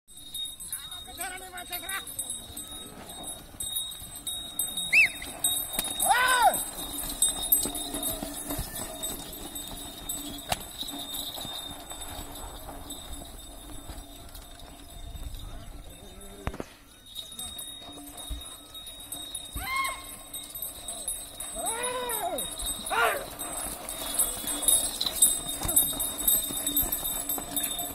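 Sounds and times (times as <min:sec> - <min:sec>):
hooves pounding on dirt: 0:00.1 - 0:27.9
men shouting: 0:21.6 - 0:23.3.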